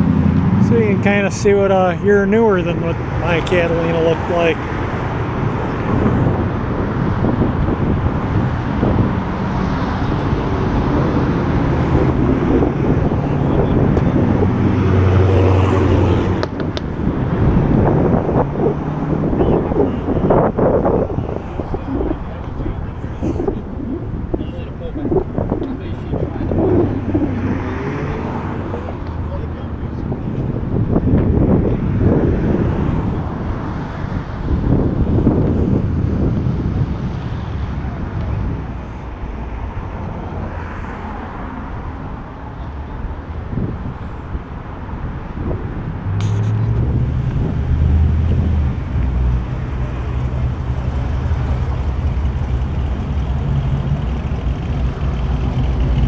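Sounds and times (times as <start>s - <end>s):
street noise: 0.0s - 56.0s
background voices: 0.6s - 4.8s, 18.5s - 30.6s
car engine running: 48.2s - 56.0s.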